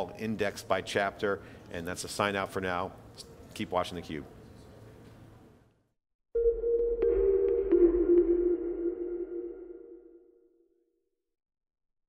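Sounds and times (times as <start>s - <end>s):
low synth tones: 6.4s - 10.5s.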